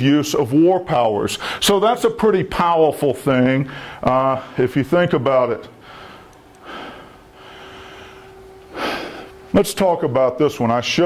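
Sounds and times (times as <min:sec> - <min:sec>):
faint steady hum: 0:00.0 - 0:11.0
man breathing close to microphone: 0:01.4 - 0:01.6, 0:03.7 - 0:04.6, 0:05.8 - 0:09.4.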